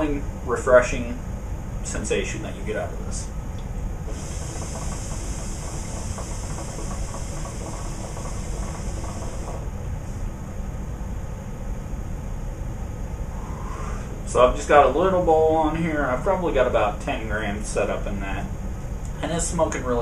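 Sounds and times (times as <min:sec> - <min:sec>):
air hissing through hose: 0:04.1 - 0:10.3.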